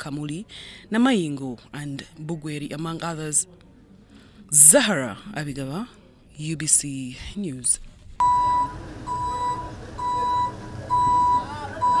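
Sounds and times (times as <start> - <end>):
reversing alarm beeping: 8.2 - 12.0.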